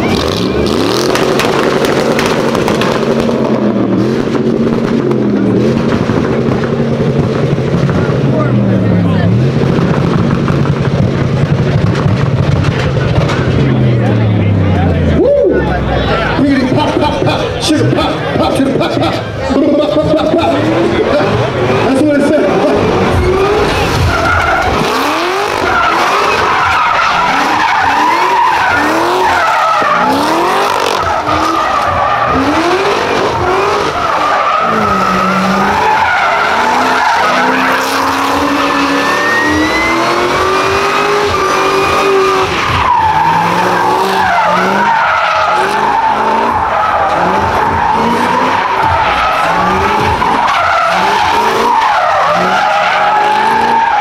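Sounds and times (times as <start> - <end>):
car engine revving: 0.0 - 54.0
tyres squealing: 14.7 - 54.0.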